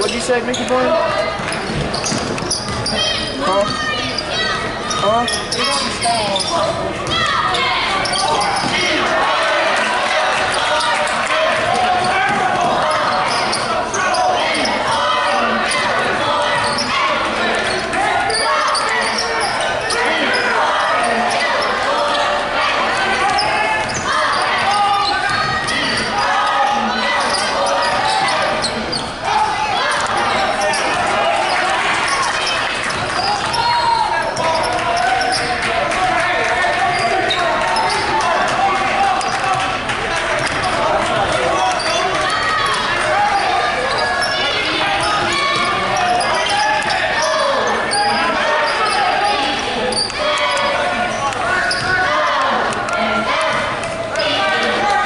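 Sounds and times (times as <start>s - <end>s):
chatter: 0.0s - 55.0s
voices calling out: 0.0s - 55.0s.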